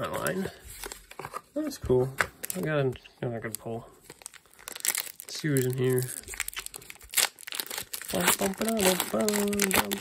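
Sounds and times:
foil wrapper crinkling: 4.1 - 10.0.

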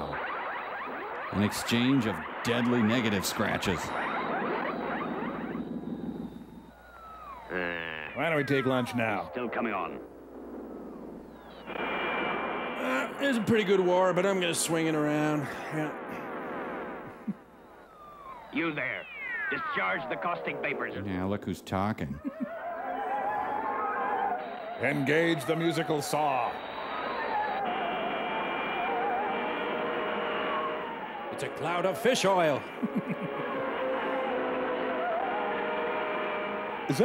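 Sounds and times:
steady held tones: 0.0 - 21.2, 22.2 - 37.0.

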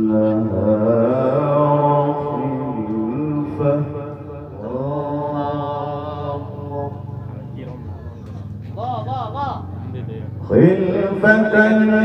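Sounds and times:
man chanting recitation: 0.0 - 7.9, 8.7 - 12.0.

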